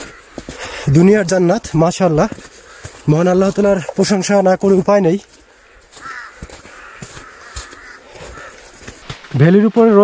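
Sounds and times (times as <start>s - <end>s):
bird calling: 0.0s - 1.0s, 2.5s - 3.5s, 5.5s - 9.1s
footsteps on snow: 0.0s - 10.0s.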